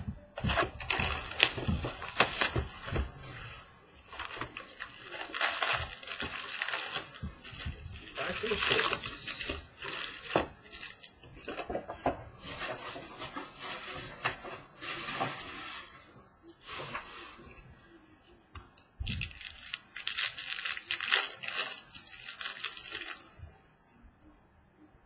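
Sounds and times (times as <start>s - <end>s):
foil packs crinkling: 0.4s - 11.8s, 12.4s - 17.4s, 19.0s - 23.3s.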